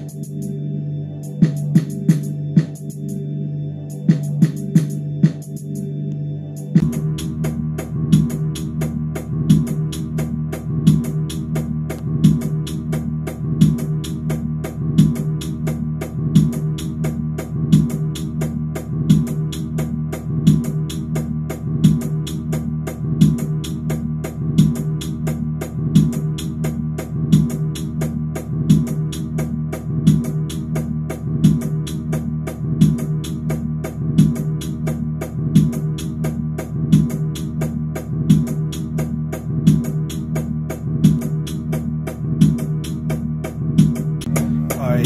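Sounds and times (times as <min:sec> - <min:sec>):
sustained low chord: 0:00.0 - 0:13.8
hi-hat pattern: 0:01.2 - 0:03.2, 0:03.9 - 0:05.8, 0:06.6 - 0:45.0.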